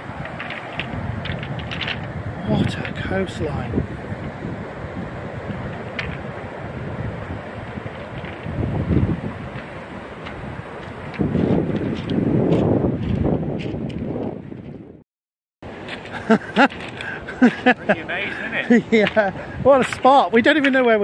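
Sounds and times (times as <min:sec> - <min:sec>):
wind buffeting microphone: 0:00.0 - 0:15.0, 0:15.7 - 0:21.0.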